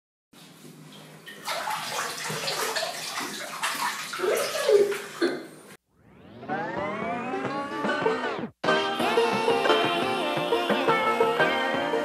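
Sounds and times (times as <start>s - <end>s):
water splashing and sloshing: 0.4s - 5.8s.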